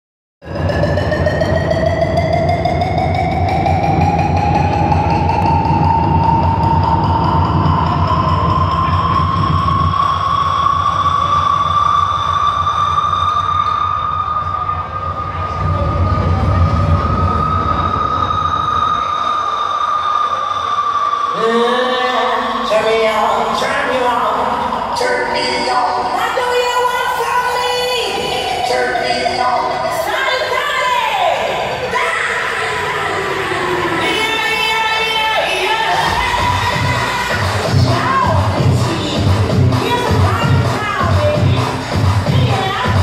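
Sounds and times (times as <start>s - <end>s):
sustained rising electronic tone: 0.4s - 22.6s
low rumbling drone: 0.4s - 26.2s.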